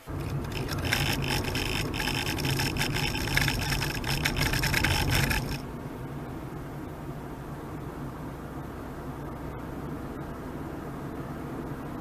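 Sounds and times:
car road and tyre rumble: 0.0s - 12.0s.

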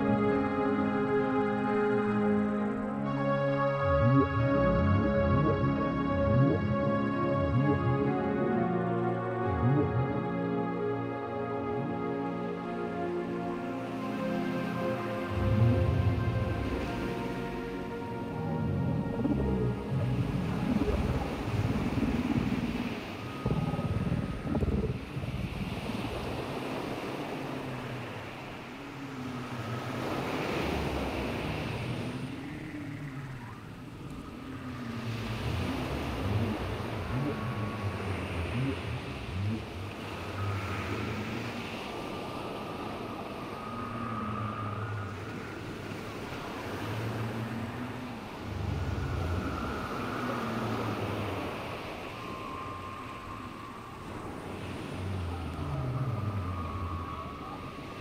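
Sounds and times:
ocean surf: 0.0s - 58.0s
whale calls: 0.0s - 58.0s.

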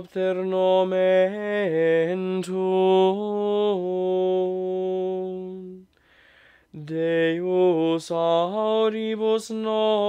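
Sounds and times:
man singing chant unaccompanied: 0.0s - 5.9s, 6.7s - 10.0s.

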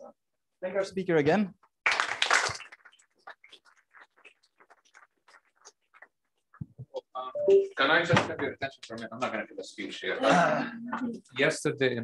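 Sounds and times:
audience applauding: 1.8s - 5.6s.

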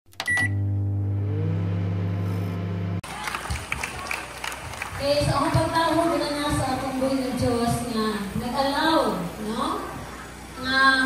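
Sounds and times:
steady low hum: 0.4s - 3.0s
faint rising tone: 0.5s - 3.0s.

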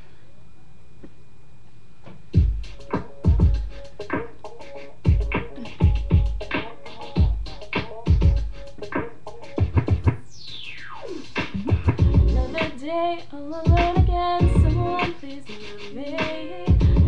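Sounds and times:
record-scratch effects: 2.3s - 12.9s, 13.6s - 17.0s
drum-machine beat: 2.3s - 17.0s.

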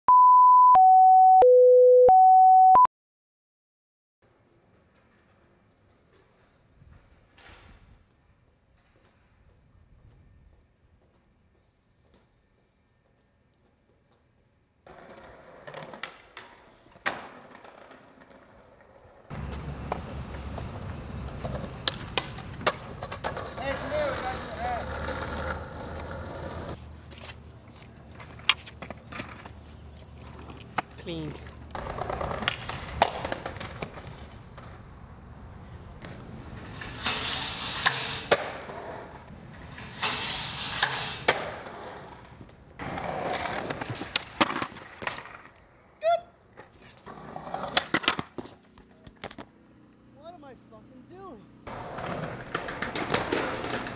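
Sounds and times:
skateboard wheels rolling on concrete: 4.2s - 50.6s, 51.3s - 53.9s
skateboard clacks: 14.9s - 26.8s, 30.2s - 35.0s, 46.6s - 49.5s, 51.7s - 53.9s
skateboard grinding on metal rail: 36.5s - 45.4s.

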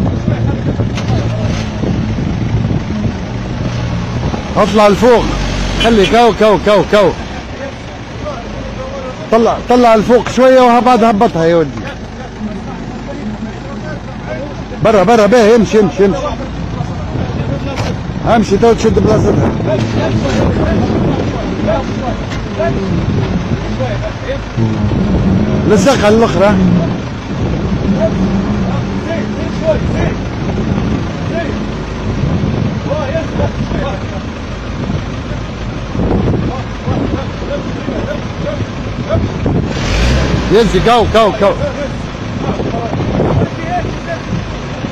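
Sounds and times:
vehicle engine running low revs: 0.0s - 44.9s
people calling out: 24.6s - 27.0s.

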